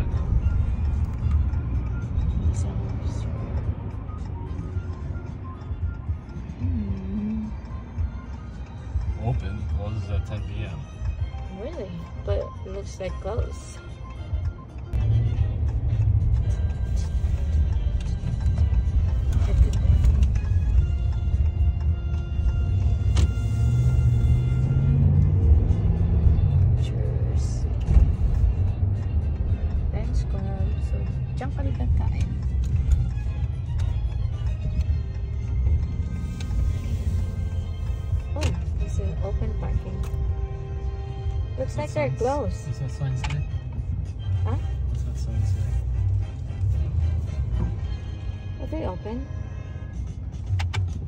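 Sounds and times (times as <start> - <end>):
music from car radio: 0.0 - 51.0
road and engine rumble: 0.0 - 51.0.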